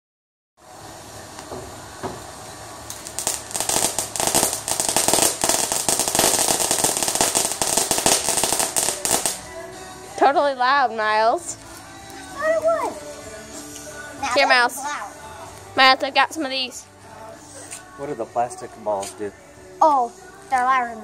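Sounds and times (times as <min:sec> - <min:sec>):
fuse hissing: 0:00.6 - 0:09.5
firework crackling pops: 0:00.6 - 0:09.6.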